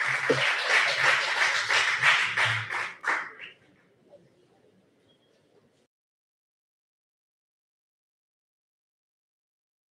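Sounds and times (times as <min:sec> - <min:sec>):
audience applauding: 0:00.0 - 0:03.5.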